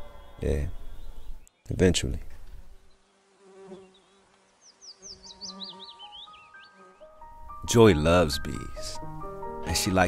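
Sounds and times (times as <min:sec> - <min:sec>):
honeybee buzzing: 0:02.7 - 0:07.6
soft bell-like music: 0:06.5 - 0:10.0.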